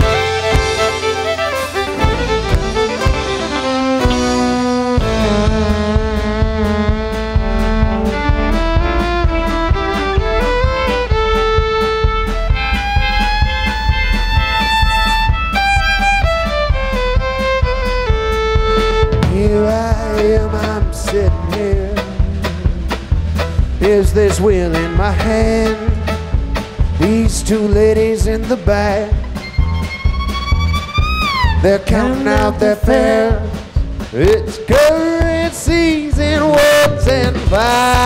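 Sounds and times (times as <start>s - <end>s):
acoustic guitar: 0.0s - 38.0s
drum kit beat: 0.0s - 38.0s
electric guitar: 0.0s - 38.0s
fiddle lead: 0.0s - 38.0s
upright bass: 0.0s - 38.0s.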